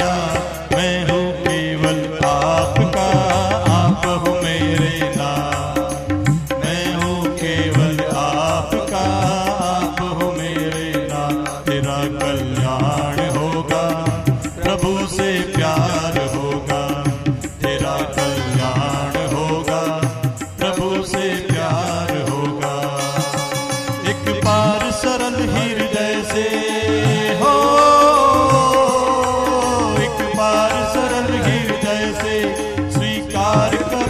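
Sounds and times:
devotional music melody over drone: 25.5s - 32.9s.

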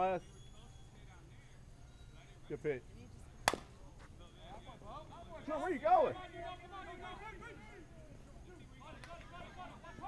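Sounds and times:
faint voices talking and calling: 0.0s - 10.0s.

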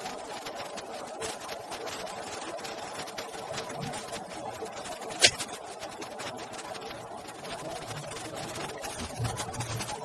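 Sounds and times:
rapid crackling clatter: 0.0s - 10.0s.

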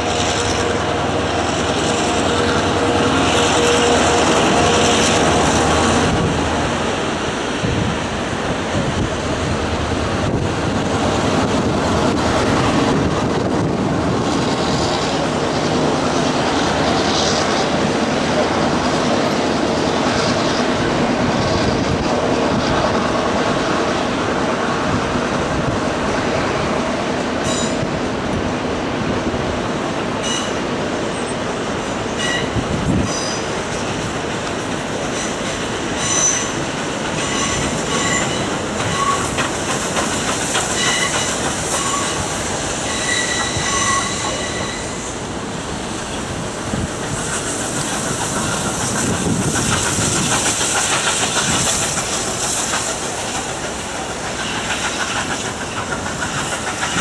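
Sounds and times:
train wheels clattering: 0.0s - 28.4s, 30.1s - 57.0s
steam locomotive hissing: 0.0s - 57.0s
wheel flanges squealing: 35.0s - 45.2s.

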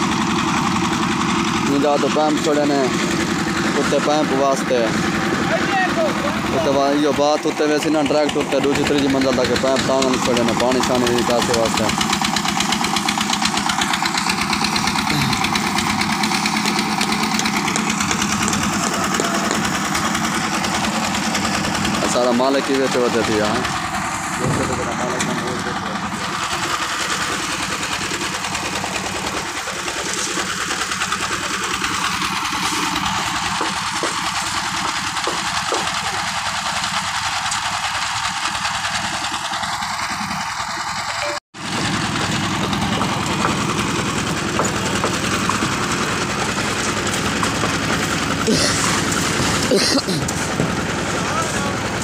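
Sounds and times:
concrete mixer engine running: 0.0s - 52.0s.

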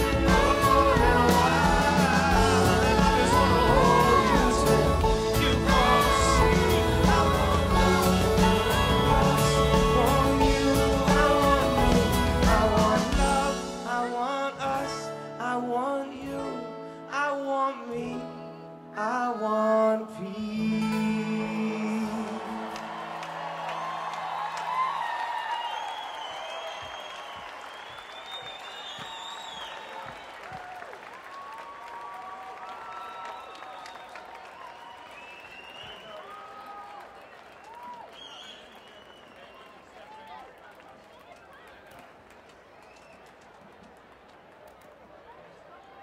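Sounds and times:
crowd cheering and applauding: 0.0s - 14.1s, 21.9s - 46.0s
rock band and choir singing: 0.0s - 15.4s
crowd whoops: 22.3s - 40.5s.

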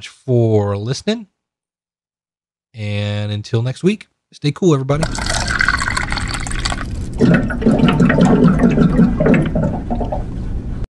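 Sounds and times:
water gurgling as it pours: 5.0s - 10.3s.

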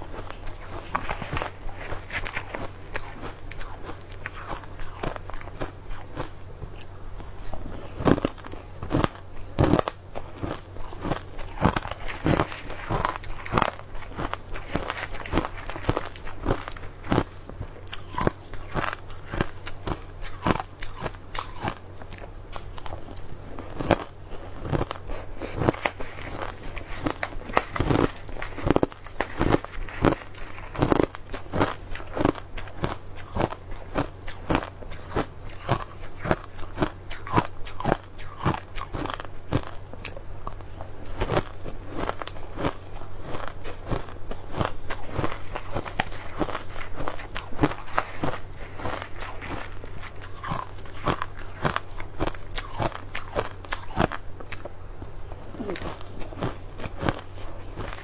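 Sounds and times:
crushed ice being chewed: 0.0s - 58.0s
steady low hum: 0.0s - 58.0s.

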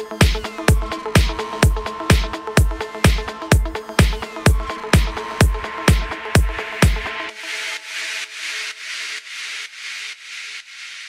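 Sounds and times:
kick drum: 0.0s - 7.4s
held synth chords: 0.0s - 7.8s.

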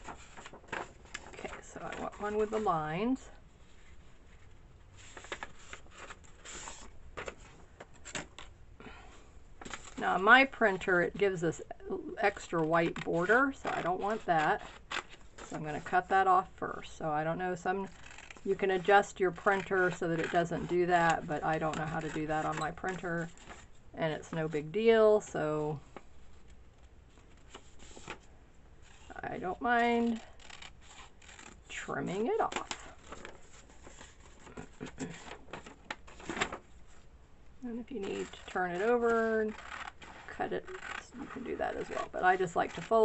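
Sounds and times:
paper rustling: 0.0s - 8.6s, 25.9s - 29.2s, 32.4s - 37.1s
scissors snipping paper: 30.1s - 31.6s.

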